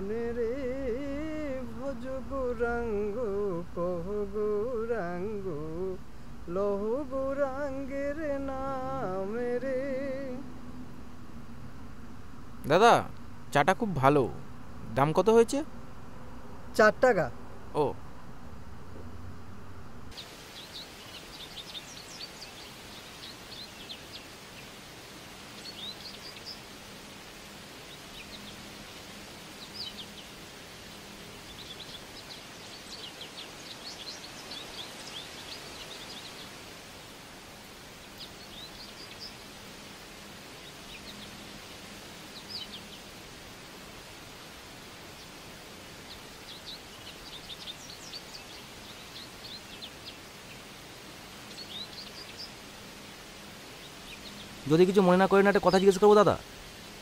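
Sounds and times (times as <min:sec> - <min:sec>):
outdoor background hiss: 0:00.0 - 0:57.0
small birds chirping: 0:20.1 - 0:57.0.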